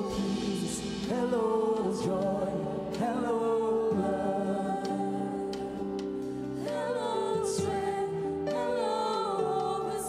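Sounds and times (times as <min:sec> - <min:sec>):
sustained musical backing: 0:00.0 - 0:10.0.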